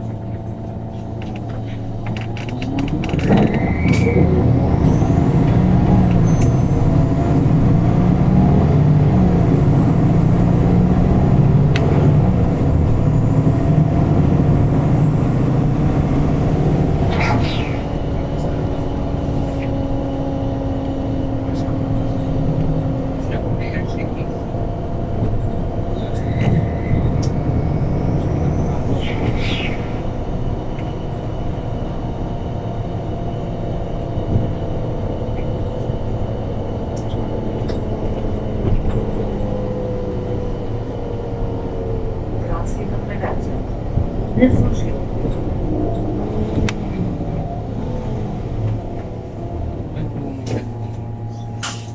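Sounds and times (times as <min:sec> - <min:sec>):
bus engine rumble from inside: 0:00.0 - 0:51.9.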